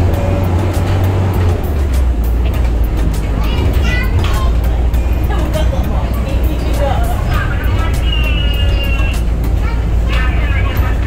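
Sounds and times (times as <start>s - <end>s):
bus engine rumbling: 0.0s - 11.0s
faint voices: 2.6s - 11.0s.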